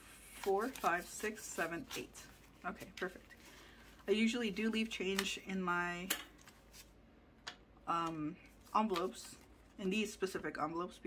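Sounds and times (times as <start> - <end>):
paper banknotes rustling: 0.2 - 5.4.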